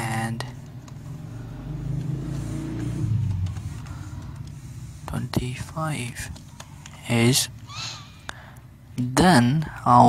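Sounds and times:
low engine rumble: 0:00.0 - 0:07.7.

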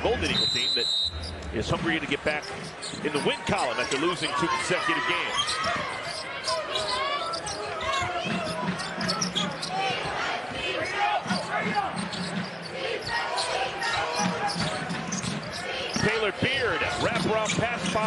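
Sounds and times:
crowd voices: 0:00.0 - 0:18.0
shoe squeaks: 0:00.1 - 0:10.3, 0:11.1 - 0:18.0.

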